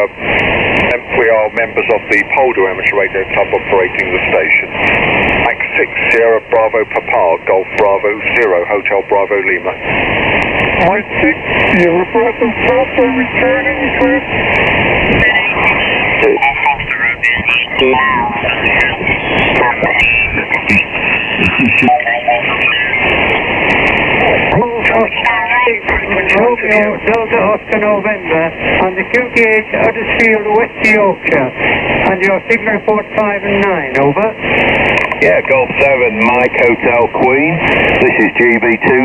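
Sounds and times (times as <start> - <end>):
radio static hiss: 0.0 - 39.0
voices over radio: 0.0 - 39.0.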